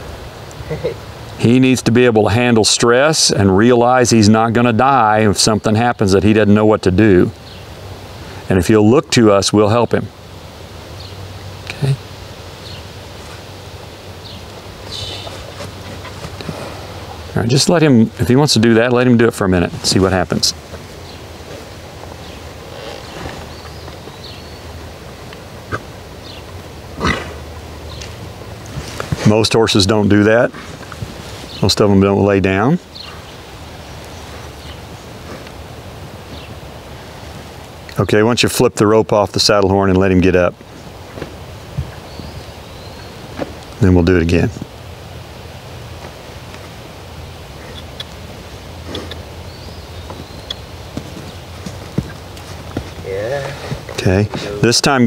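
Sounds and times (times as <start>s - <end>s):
faint clicks and rustles: 14.5s - 17.3s, 27.9s - 29.4s
horse breathing: 14.8s - 17.3s, 22.5s - 24.0s, 30.5s - 31.4s, 51.0s - 54.6s
horse snorting: 14.9s - 17.3s, 21.4s - 24.0s, 25.6s - 27.8s, 30.5s - 31.0s, 48.8s - 49.3s.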